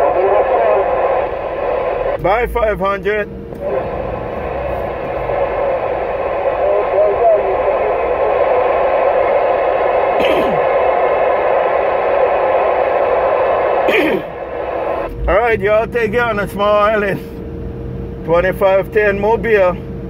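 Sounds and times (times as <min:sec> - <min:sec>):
radio static hiss: 0:00.0 - 0:17.3.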